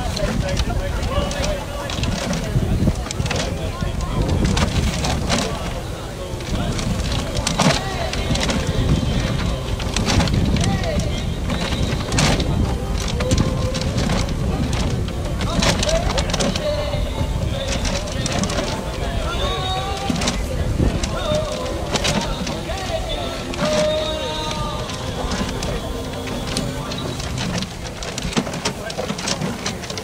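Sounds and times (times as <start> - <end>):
crowd chatter: 0.0 - 30.0
paper tickets tumbling in drum: 0.0 - 30.0
raffle drum clicking and knocking: 0.0 - 30.0.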